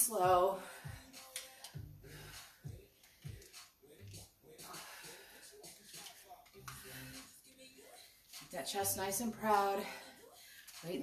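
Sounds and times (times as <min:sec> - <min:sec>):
person breathing: 0:00.5 - 0:08.2, 0:09.8 - 0:10.8.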